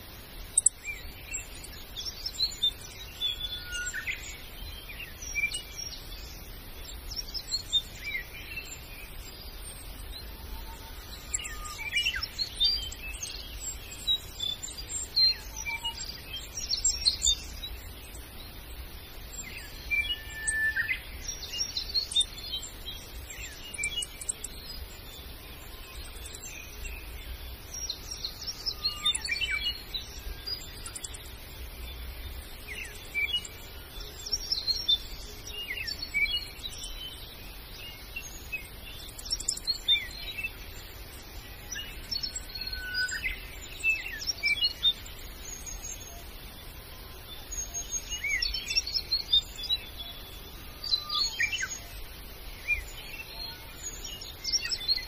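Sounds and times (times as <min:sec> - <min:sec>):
small birds chirping: 0:00.0 - 0:55.0.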